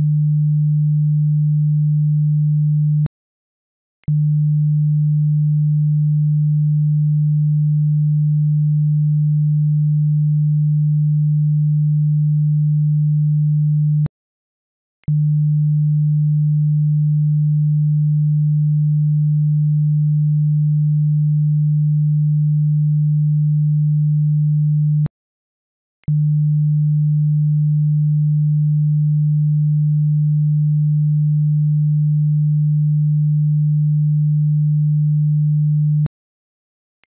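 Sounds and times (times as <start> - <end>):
low sine test tone: 0.0 - 3.1, 4.0 - 14.1, 15.0 - 25.1, 26.0 - 36.1.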